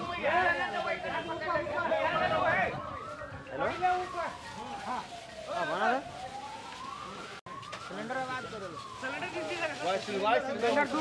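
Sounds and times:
emergency vehicle siren wailing: 0.0s - 11.0s
voices talking: 0.0s - 11.0s.

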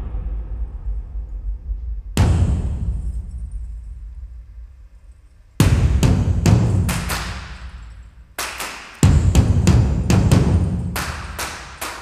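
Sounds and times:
ringing percussion strokes: 2.2s - 12.0s.

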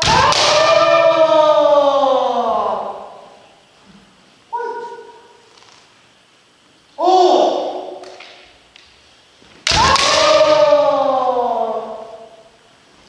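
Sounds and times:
person shouting: 0.0s - 3.2s, 7.0s - 8.0s, 9.7s - 12.3s.

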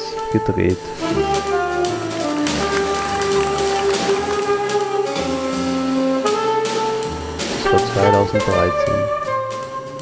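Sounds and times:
light jazz beat: 0.0s - 10.0s
saxophone holding long notes: 1.0s - 10.0s.

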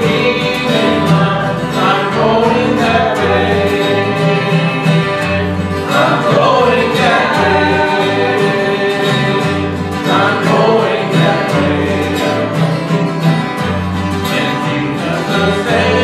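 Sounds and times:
acoustic guitar strumming: 0.0s - 16.0s
man singing: 0.0s - 16.0s.

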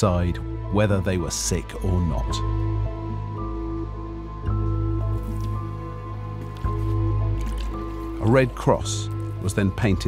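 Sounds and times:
slow background music: 0.0s - 10.0s.

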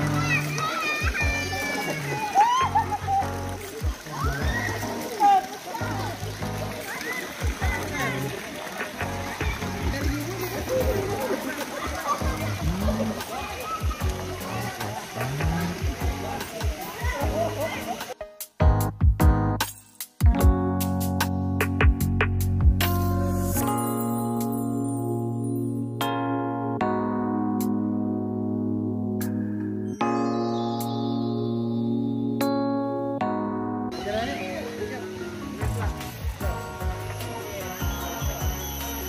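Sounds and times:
mix of voices: 0.0s - 18.2s
swimmers splashing: 0.0s - 18.2s
background music: 0.0s - 39.0s.

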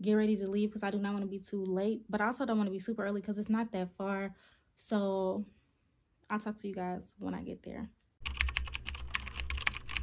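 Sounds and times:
computer keyboard typing: 8.2s - 10.0s.

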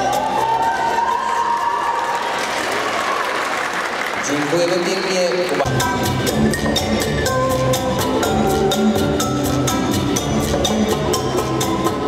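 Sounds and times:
latin dance music: 0.0s - 2.4s, 4.2s - 12.0s
dance music with percussion: 0.0s - 2.8s, 4.2s - 12.0s
audience applauding: 0.4s - 5.7s.

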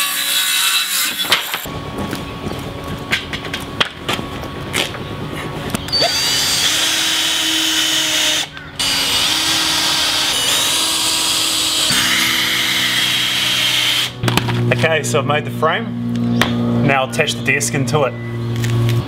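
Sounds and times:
cordless drill motor whining: 5.8s - 14.2s.

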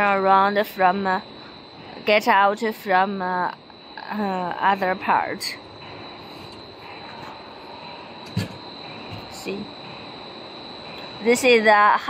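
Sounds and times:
factory machinery hum: 0.0s - 12.0s
faint high-pitched whine: 0.0s - 12.0s.

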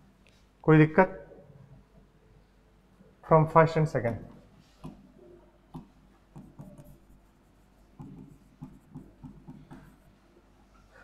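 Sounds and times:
stylus scraping on display: 4.3s - 11.0s
stylus tapping on display: 5.7s - 7.0s, 7.9s - 10.1s.

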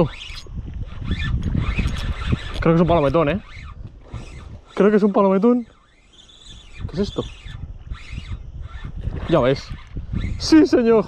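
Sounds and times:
fishing reel clicks: 0.0s - 11.0s.

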